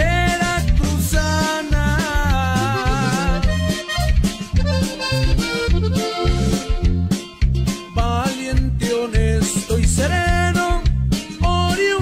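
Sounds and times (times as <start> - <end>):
pulsing bass line: 0.0 - 12.0
accordion melody: 0.3 - 8.0.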